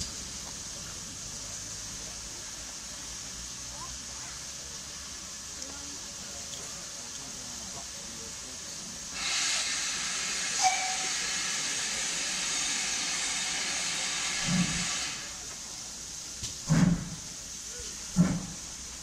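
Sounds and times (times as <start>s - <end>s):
steam hissing loudly: 0.0s - 19.0s
steam locomotive exhaust beats: 0.0s - 19.0s.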